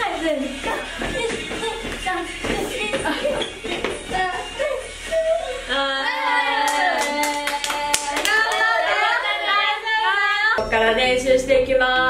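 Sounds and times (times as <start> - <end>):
excited voices: 0.0 - 10.6
people clapping: 6.5 - 9.2.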